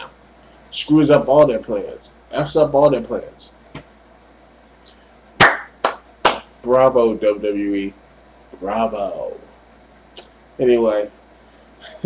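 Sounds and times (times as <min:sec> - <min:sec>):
man clapping hands: 0:05.4 - 0:06.5.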